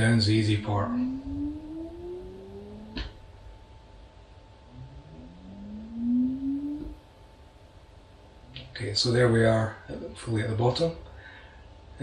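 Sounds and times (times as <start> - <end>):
faint steady high tone: 0.0 - 3.8, 4.7 - 7.6
motor rising whine: 0.0 - 8.7.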